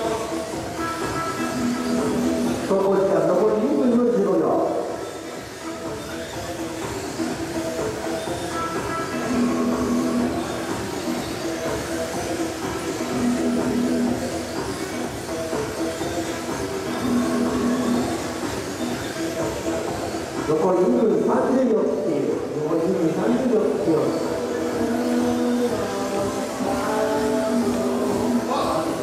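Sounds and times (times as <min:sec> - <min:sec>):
background music with low note: 0:00.0 - 0:29.0
steady rushing hall noise: 0:00.0 - 0:29.0.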